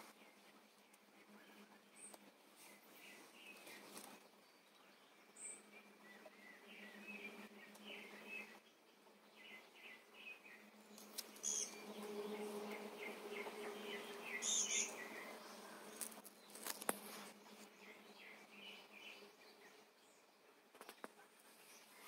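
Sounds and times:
small birds chirping: 0.0 - 22.0
insect buzz: 9.4 - 19.7
brief crackles: 15.9 - 17.4, 20.7 - 21.2.

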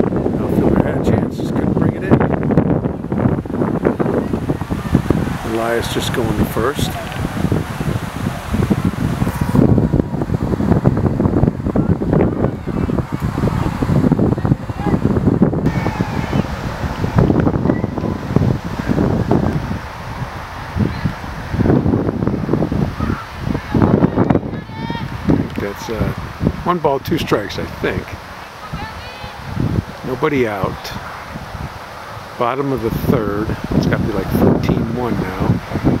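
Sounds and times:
distant voices: 0.0 - 35.8
wind buffeting microphone: 0.0 - 36.0.

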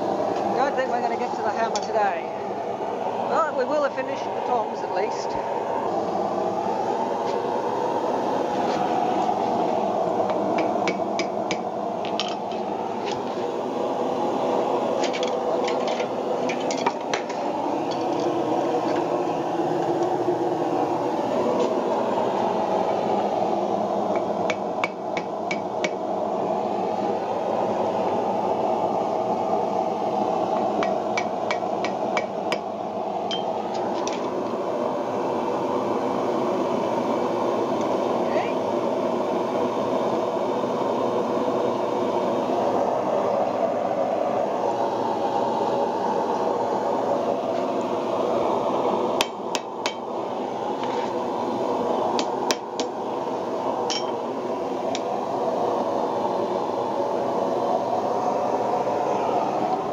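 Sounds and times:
forge rushing noise: 0.0 - 59.9
hammer striking iron on anvil: 10.6 - 11.6, 49.2 - 50.0, 53.9 - 54.2.

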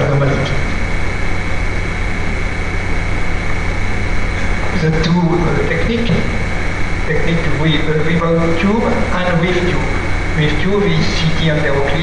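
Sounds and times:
man speaking: 0.0 - 0.7, 4.4 - 12.0
high-pitched whine: 0.0 - 12.0
low hum and hiss: 0.0 - 12.0.

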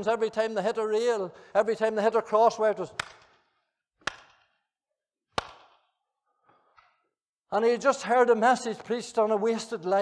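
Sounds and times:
sharp handclaps with echo: 2.9 - 4.6, 5.3 - 5.9.

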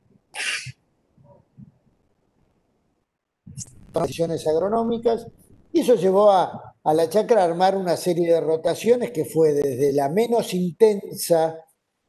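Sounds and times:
faint small sounds: 0.0 - 6.9
person breathy burst: 0.4 - 0.8.

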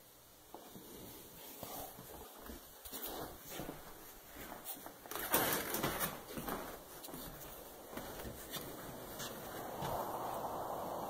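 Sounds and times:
close rustling and soft scuffs: 0.5 - 11.0.

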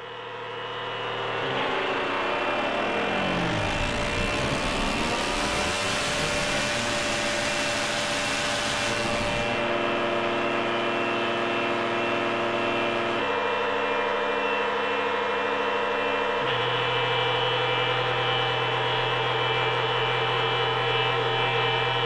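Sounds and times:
synthesizer drone tones: 0.6 - 13.9
synthesizer hissy sweep: 1.4 - 13.2.

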